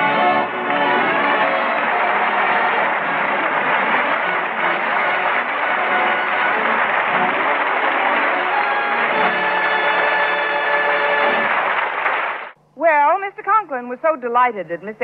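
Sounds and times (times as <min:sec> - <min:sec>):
musical bridge: 0:00.0 - 0:11.7
audience laughter and applause: 0:00.4 - 0:12.6.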